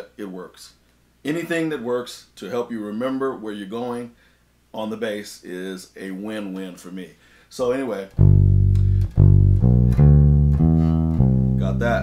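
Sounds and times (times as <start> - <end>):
electric bass single notes: 8.1 - 12.0.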